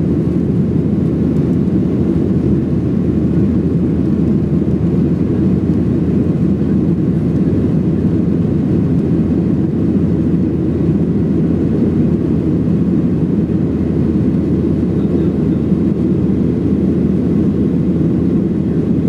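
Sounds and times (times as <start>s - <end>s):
jet engines rumbling: 0.0s - 19.0s.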